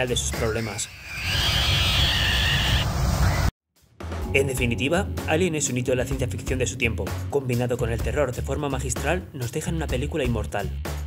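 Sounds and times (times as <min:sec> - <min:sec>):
creature screeching: 0:00.4 - 0:03.5
low rumble: 0:04.3 - 0:08.7.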